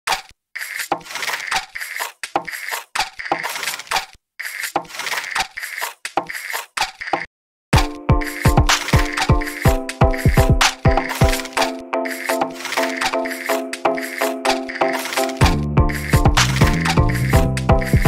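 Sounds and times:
rattly percussion beat: 7.8s - 18.0s.

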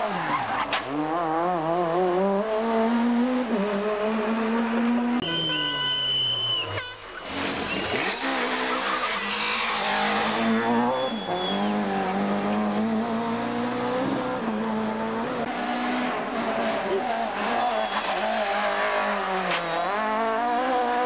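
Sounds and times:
rally car engine at high revs: 0.0s - 6.5s, 7.2s - 21.0s.

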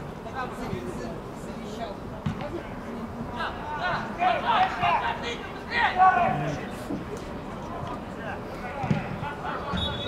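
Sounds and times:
football players calling out: 3.4s - 7.2s.

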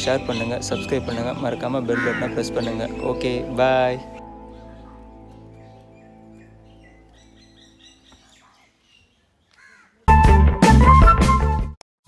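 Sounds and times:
background music: 0.0s - 8.2s, 10.1s - 11.8s.

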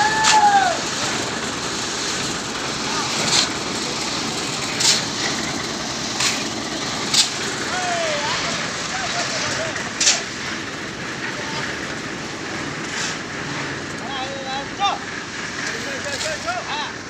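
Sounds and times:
concrete mixer churning: 0.0s - 17.0s
metallic clanks of shovels: 3.1s - 3.6s, 4.4s - 7.4s, 8.5s - 10.5s, 12.8s - 13.8s, 15.6s - 16.6s.

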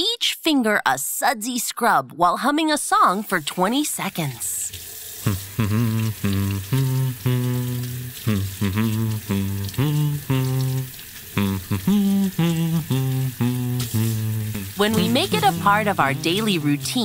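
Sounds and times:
crackly fizz of suds: 4.6s - 16.9s
person humming a cheerful tune: 5.2s - 17.0s.

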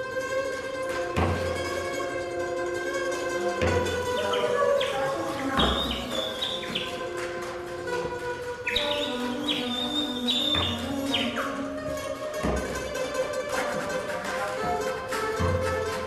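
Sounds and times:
plucked strings: 0.0s - 16.0s
flute chirps and notes: 3.6s - 11.8s
low drum-like thud: 12.3s - 13.2s.

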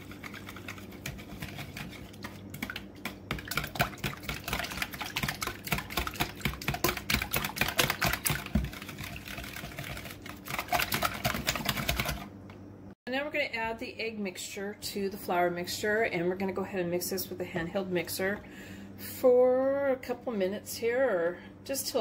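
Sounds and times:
whisk beating eggs in bowl: 0.0s - 12.3s.

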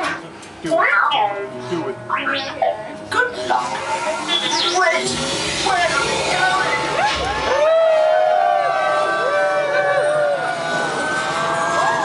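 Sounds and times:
robot beeping and warbling: 0.6s - 7.2s.

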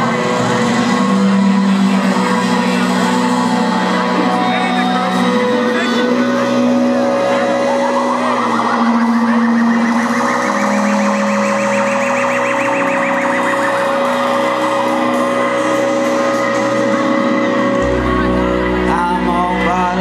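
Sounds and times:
deep bass note: 0.0s - 20.0s
held guitar notes: 0.0s - 20.0s
held keyboard notes: 0.0s - 20.0s
warbling siren-like tone: 0.0s - 20.0s.

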